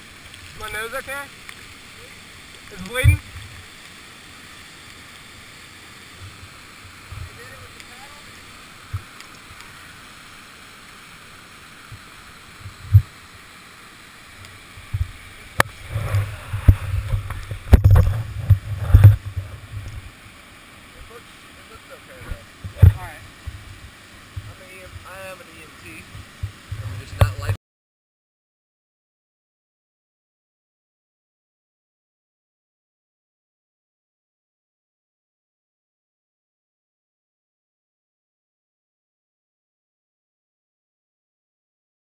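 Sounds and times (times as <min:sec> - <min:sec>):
whitewater waterfall rushing: 0:00.1 - 0:27.6
thumps against helmet camera: 0:16.0 - 0:20.0.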